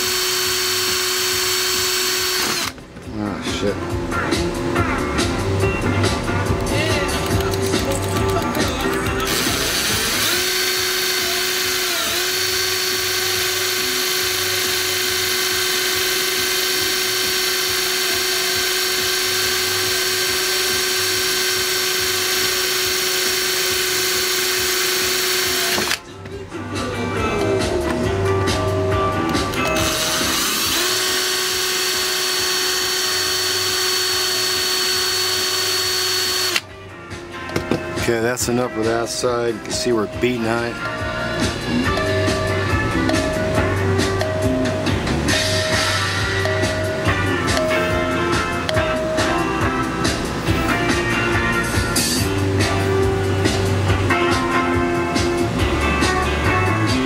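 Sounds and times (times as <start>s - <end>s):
cordless drill whining: 0.0s - 2.8s, 7.3s - 26.1s, 29.2s - 36.7s.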